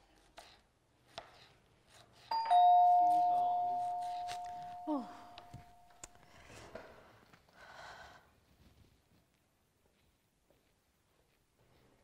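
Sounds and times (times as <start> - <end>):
two-tone doorbell chime: 2.3 - 6.0.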